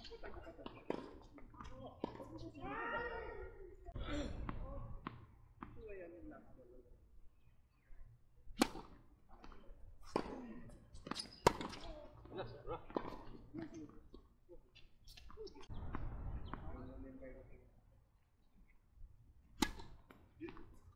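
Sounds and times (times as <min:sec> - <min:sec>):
tennis balls struck by rackets: 0:00.0 - 0:03.2, 0:08.5 - 0:12.0, 0:19.5 - 0:20.9
players' voices: 0:00.0 - 0:07.0, 0:08.6 - 0:18.0.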